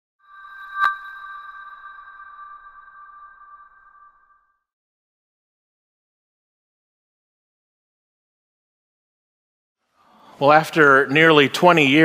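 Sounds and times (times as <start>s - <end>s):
ringing chime: 0.2s - 4.6s.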